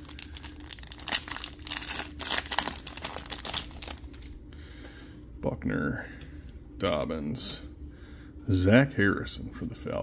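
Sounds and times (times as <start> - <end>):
foil wrapper crinkling and tearing: 0.0 - 4.4.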